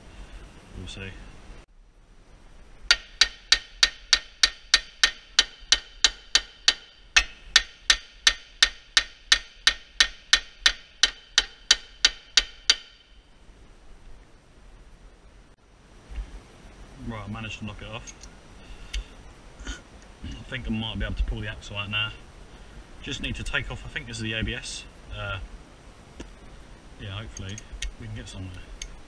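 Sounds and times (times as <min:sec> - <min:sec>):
hammer striking metal hub: 0:02.9 - 0:13.2.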